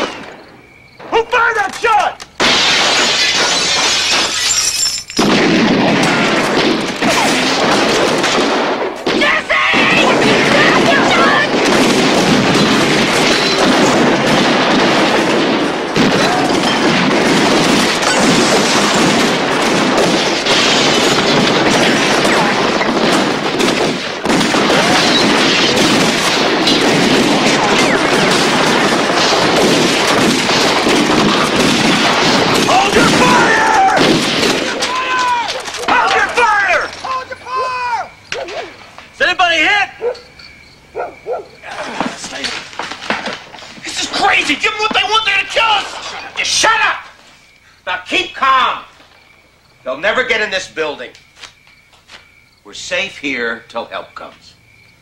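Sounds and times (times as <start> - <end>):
continuous gunfire volley: 2.4 - 4.5, 5.2 - 39.8.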